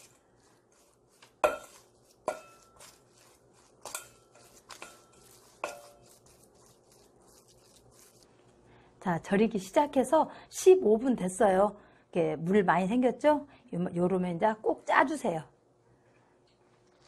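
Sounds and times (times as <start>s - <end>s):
spoon scraping bowl: 0.0s - 8.3s
spoon clinking on metal bowl: 1.4s - 6.2s.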